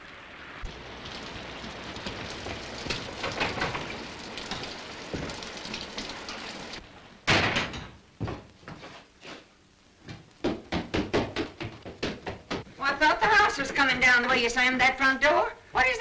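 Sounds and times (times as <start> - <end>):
steady rain: 0.0 - 6.9.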